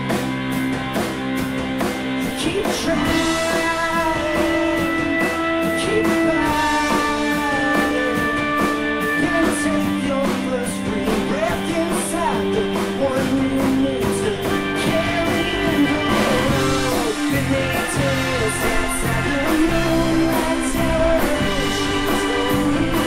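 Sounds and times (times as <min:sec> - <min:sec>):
live rock band playing: 0:00.0 - 0:23.0.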